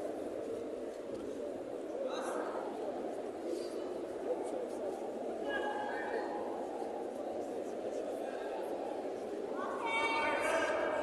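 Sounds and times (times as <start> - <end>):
crowd murmur in a hall: 0.0 - 11.0.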